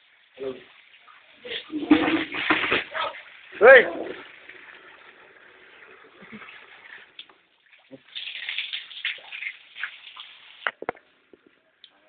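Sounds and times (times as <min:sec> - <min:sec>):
water pouring from hose into bucket: 0:00.0 - 0:10.8.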